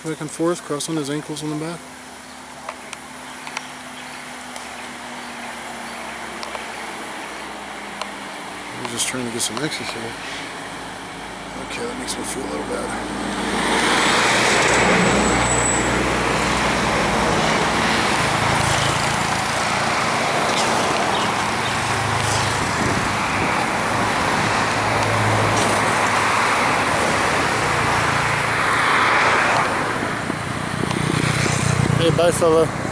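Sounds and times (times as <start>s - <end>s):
passing vehicles: 0.0s - 32.9s.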